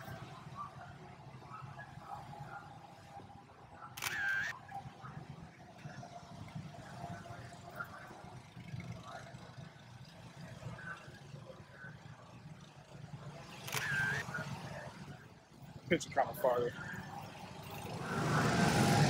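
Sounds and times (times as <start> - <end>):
faint voices: 0.0 - 19.0
camera shutter firing: 4.0 - 4.5, 13.7 - 14.2.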